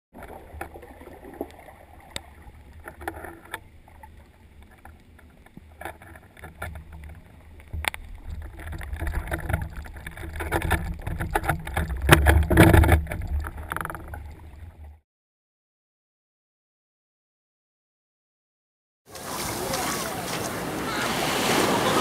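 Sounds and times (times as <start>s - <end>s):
clicks and crackles: 0.2s - 14.7s
underwater rumble of moving water: 0.2s - 15.0s.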